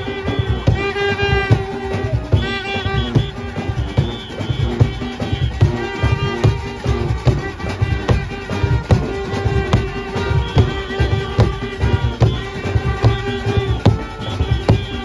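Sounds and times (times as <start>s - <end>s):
brass horns sustained melody: 0.0s - 15.0s
hand-beaten drum rhythm: 0.0s - 15.0s.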